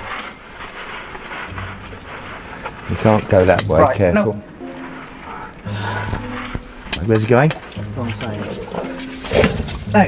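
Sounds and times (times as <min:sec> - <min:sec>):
animal scuffling and scraping: 0:00.0 - 0:10.0
rustling near microphone: 0:00.0 - 0:10.0.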